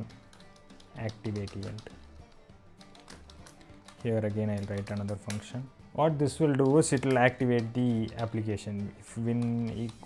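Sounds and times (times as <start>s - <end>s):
computer keyboard keystrokes: 0.0s - 2.2s, 2.8s - 5.5s, 6.6s - 8.5s, 9.3s - 10.0s.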